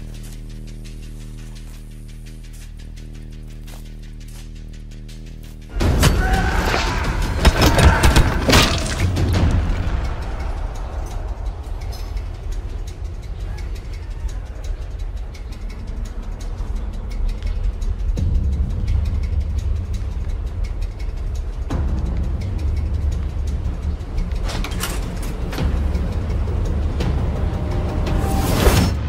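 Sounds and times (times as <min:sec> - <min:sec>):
rapid rattle of clicks: 0:09.0 - 0:27.2
subway train rumbling: 0:09.2 - 0:29.0.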